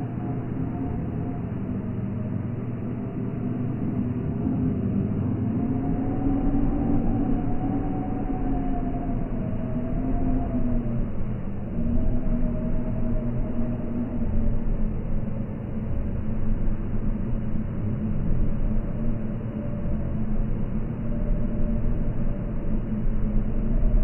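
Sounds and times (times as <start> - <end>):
low rumbling drone: 0.0 - 24.0.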